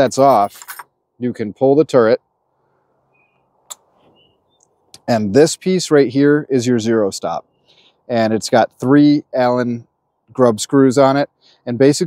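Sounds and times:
faint short chirps: 3.1s - 4.7s.

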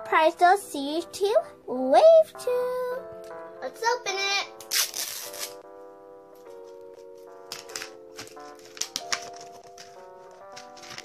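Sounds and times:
background music with held chords: 0.0s - 11.0s
wrapping crackling as peeled open: 4.6s - 5.6s, 6.6s - 11.0s.

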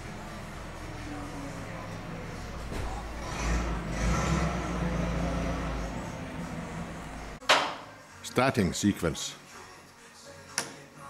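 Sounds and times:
low machine hum: 0.0s - 7.4s.

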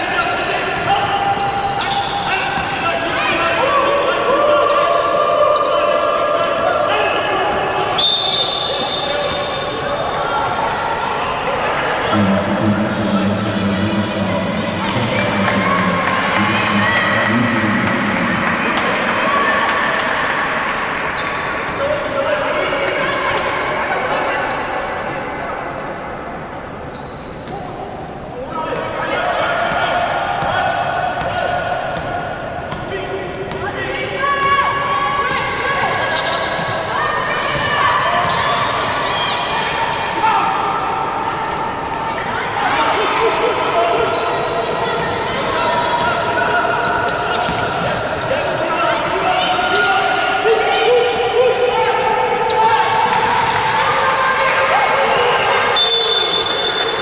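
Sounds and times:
players calling out: 0.0s - 24.9s, 27.0s - 57.0s.

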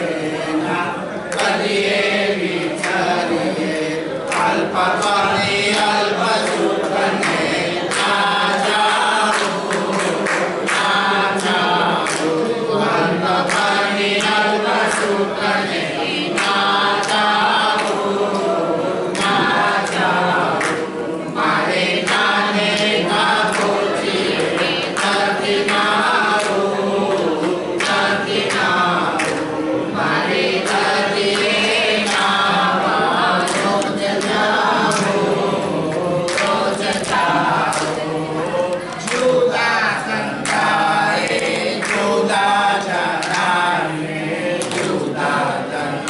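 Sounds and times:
group singing in chorus: 0.0s - 46.0s
hand claps: 0.0s - 46.0s.

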